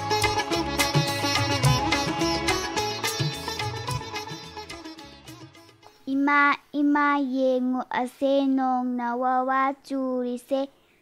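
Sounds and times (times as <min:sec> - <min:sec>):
child singing: 0:06.0 - 0:10.8.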